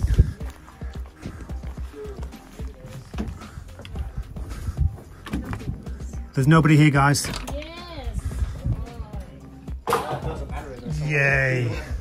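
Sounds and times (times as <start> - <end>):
music: 0.0 - 12.0
people talking indistinctly: 0.0 - 12.0.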